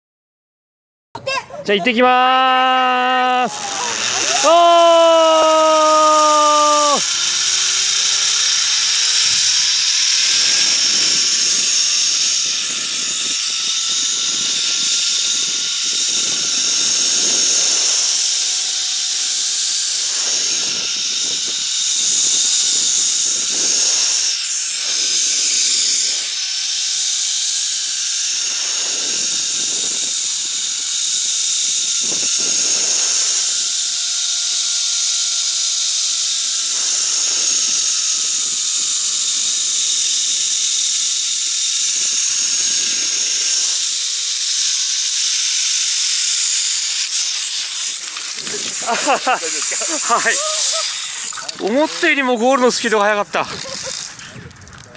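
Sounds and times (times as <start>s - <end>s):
zip line pulleys on steel cable: 2.1s - 54.9s
wind buffeting microphone: 53.4s - 54.9s.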